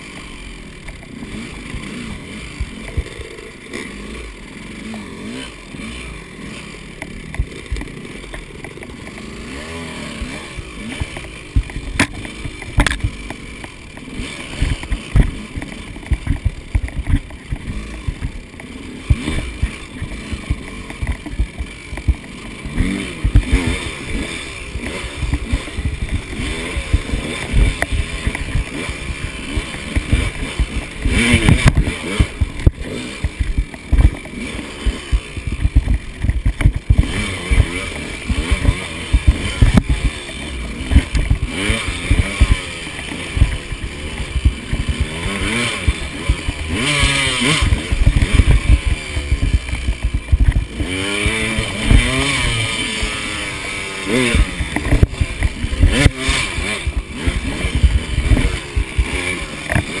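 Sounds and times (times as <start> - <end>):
dirt bike engine revving: 0.0 - 60.0.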